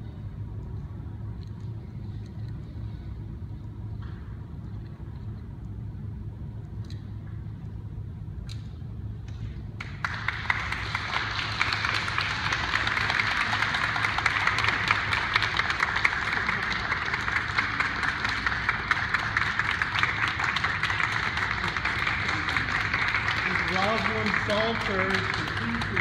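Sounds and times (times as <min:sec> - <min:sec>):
low hum: 0:00.0 - 0:26.0
audience applauding: 0:09.8 - 0:26.0.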